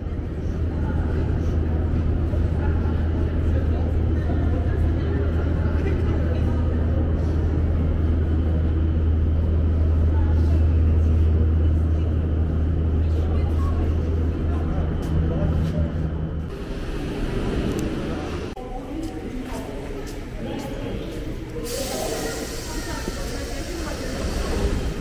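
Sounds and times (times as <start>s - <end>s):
echoing voices of people: 0.0s - 25.0s.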